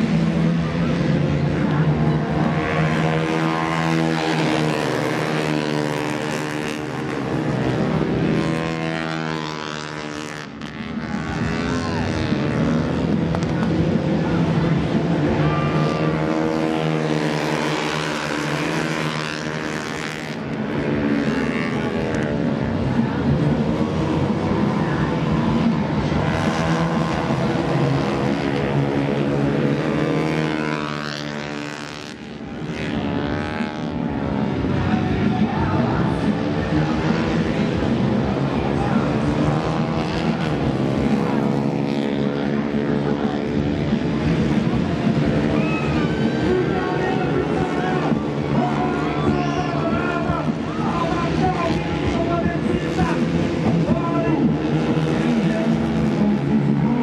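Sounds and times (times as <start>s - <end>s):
racing motorcycle engines revving: 0.0s - 57.0s.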